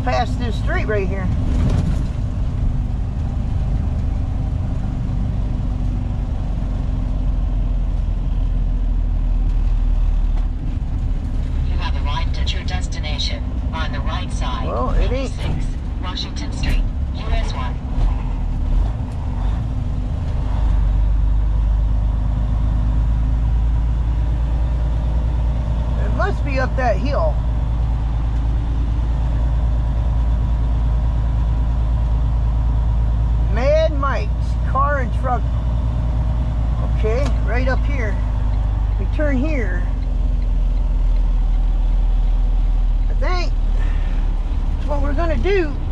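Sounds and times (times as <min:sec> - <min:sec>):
road noise: 0:00.0 - 0:45.9
truck diesel engine drone: 0:00.0 - 0:45.9.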